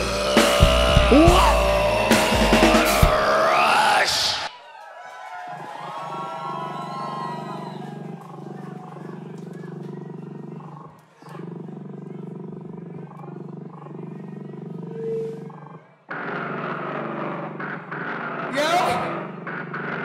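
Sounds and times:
distorted low electronic drone: 0.0 - 4.5, 12.0 - 20.0.

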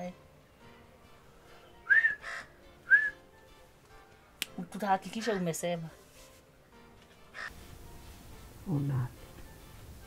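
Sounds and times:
faint background music: 0.0 - 10.0
bird whistling: 1.8 - 3.2.

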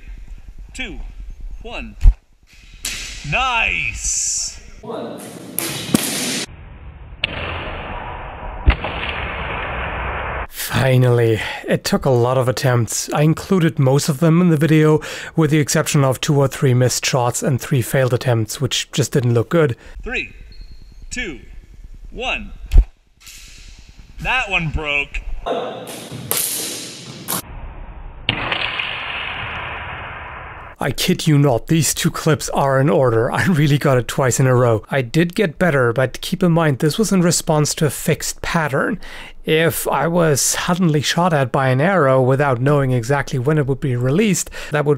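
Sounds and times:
steady hiss: 0.0 - 4.8, 19.7 - 27.4
arrow striking sword blade: 2.5 - 3.3, 5.6 - 6.5, 25.9 - 27.4
sword striking arrow crack: 2.5 - 3.3, 5.6 - 6.5, 7.2 - 10.2, 25.9 - 27.4, 28.3 - 30.4.

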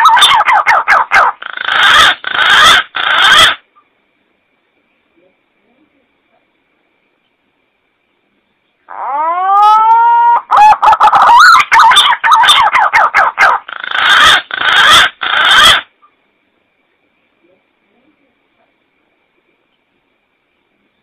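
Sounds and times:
pigeon call: 0.0 - 3.6, 8.9 - 15.9.

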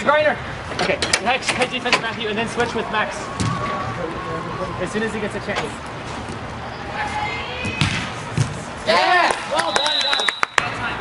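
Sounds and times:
ball being kicked: 7.7 - 8.6.

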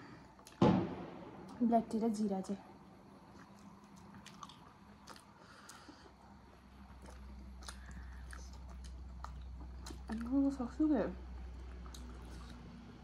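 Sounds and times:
people chewing food: 0.0 - 0.6, 3.0 - 13.0
low steady hum: 0.0 - 13.0
wet mouth clicks: 7.0 - 10.3.

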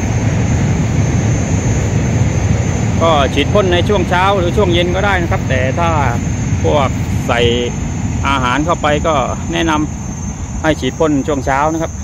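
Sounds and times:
train passing with deep rumble: 0.0 - 12.0.

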